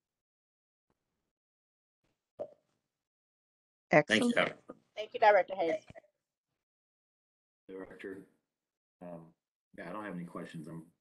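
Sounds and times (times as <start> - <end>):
person speaking: 4.0 - 6.0.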